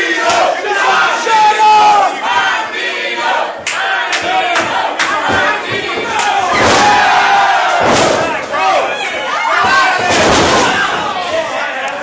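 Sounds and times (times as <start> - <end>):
crowd yelling and shouting: 0.0 - 12.0.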